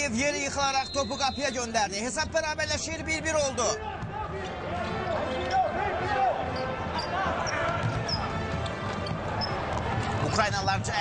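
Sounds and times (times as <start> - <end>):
arena crowd noise: 0.0 - 11.0
shoe squeals: 0.6 - 1.8, 6.4 - 8.4, 9.0 - 9.7
ball and feet on court floor: 7.3 - 10.4.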